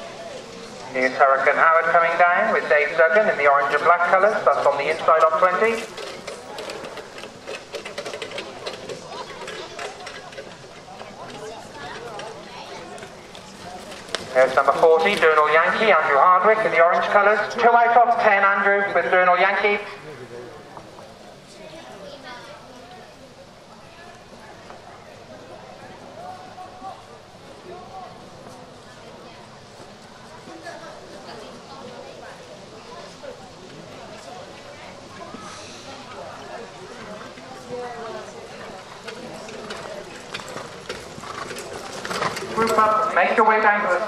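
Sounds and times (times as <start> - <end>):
outdoor background noise: 0.0 - 44.0
spectators talking: 0.0 - 44.0
trotting horse hooves and harness: 0.1 - 19.9, 27.3 - 44.0.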